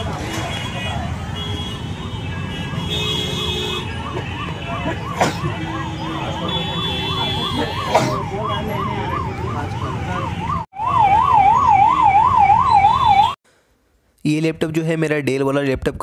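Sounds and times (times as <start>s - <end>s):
road traffic: 0.0s - 14.2s
emergency siren warbling: 3.8s - 13.4s.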